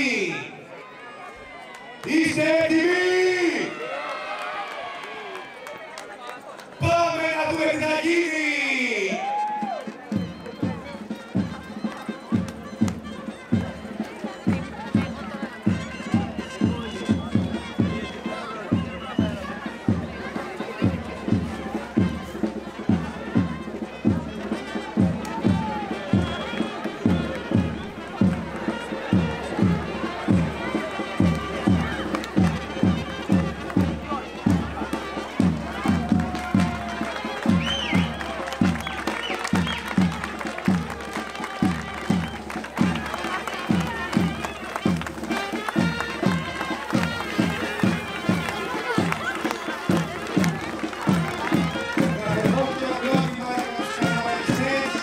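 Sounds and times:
crowd chatter: 0.0s - 55.0s
steady drum beat: 9.5s - 55.0s.

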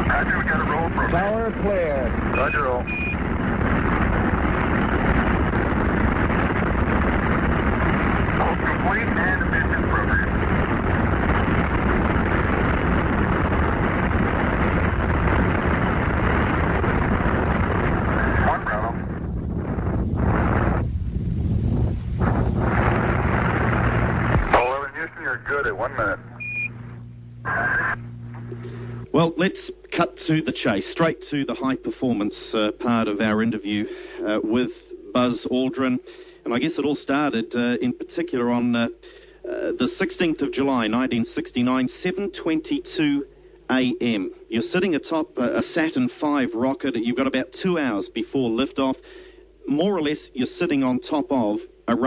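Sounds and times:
rocket engines rumbling: 0.0s - 49.0s
low hum: 0.0s - 49.9s.

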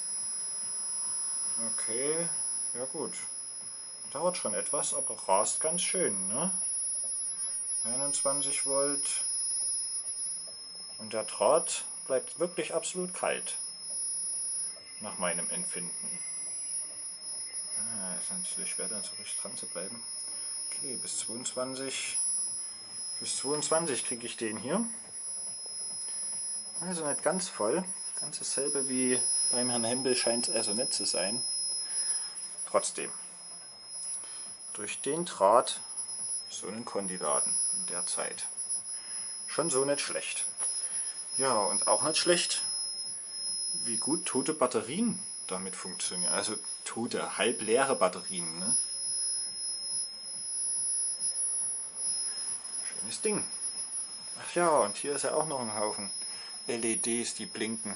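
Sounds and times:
faint low hum: 0.0s - 57.9s
high-pitched electronic whine: 0.0s - 57.9s.

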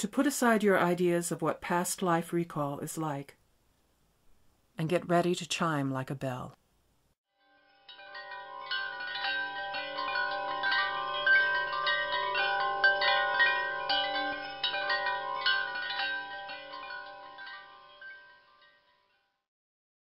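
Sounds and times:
chimes ringing: 7.4s - 19.2s.

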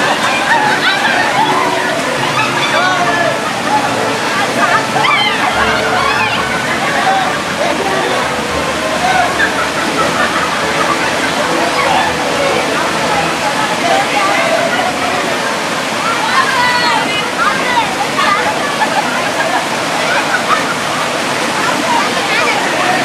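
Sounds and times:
river water running over rocks: 0.0s - 23.0s
women's voices chattering: 0.0s - 23.0s
high cries: 0.4s - 15.3s.

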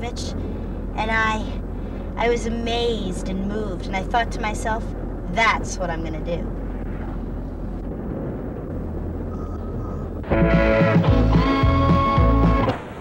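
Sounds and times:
car road and engine noise: 0.0s - 13.0s
song with guitar: 10.2s - 12.8s.

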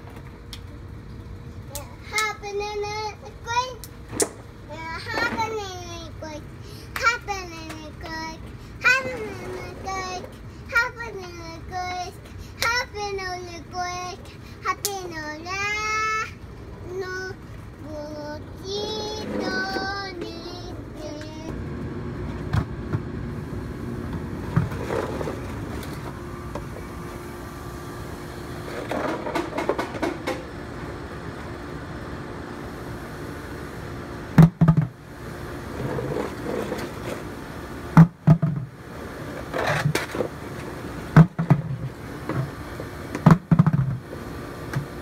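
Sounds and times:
small voice sounds: 1.7s - 2.2s
toddler singing: 1.7s - 3.9s, 7.0s - 21.5s.

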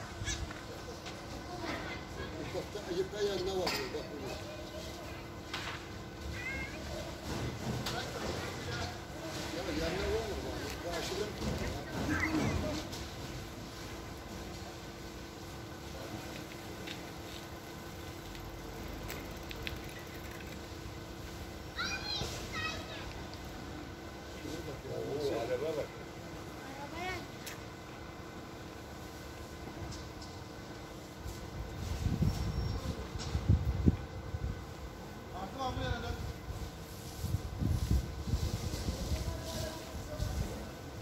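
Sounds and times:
distant people talking and calling: 0.0s - 31.3s.

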